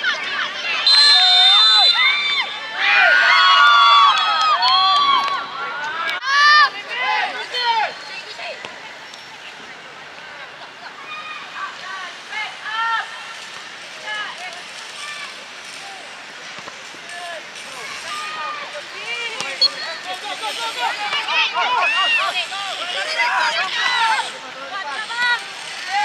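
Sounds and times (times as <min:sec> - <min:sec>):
players shouting: 0:00.0 - 0:08.6, 0:17.2 - 0:26.0
outdoor noise haze: 0:00.0 - 0:26.0.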